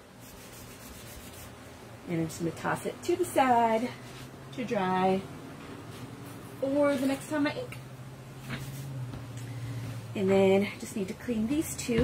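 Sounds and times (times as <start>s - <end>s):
low room hum: 0.0s - 12.0s
cloth rubbing sticky mat: 0.2s - 1.6s, 8.4s - 9.0s.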